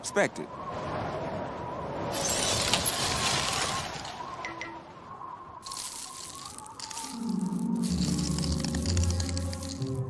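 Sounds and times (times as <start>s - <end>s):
crackling glittering hiss: 2.1s - 10.0s.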